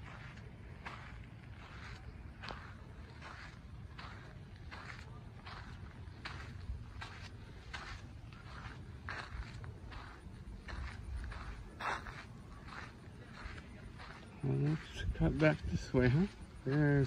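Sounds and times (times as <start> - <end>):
footsteps on paved path: 0.0 - 17.0.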